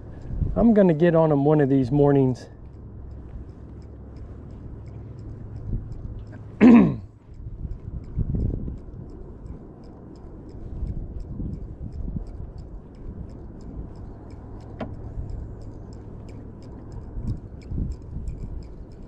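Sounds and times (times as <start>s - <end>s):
low rumble: 0.0s - 19.0s
fishing reel ticking: 7.3s - 19.0s
sharp click: 12.0s - 19.0s.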